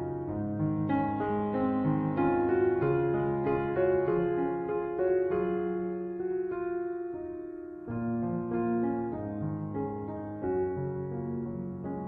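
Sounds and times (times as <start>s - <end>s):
slow solo piano music: 0.0s - 12.0s.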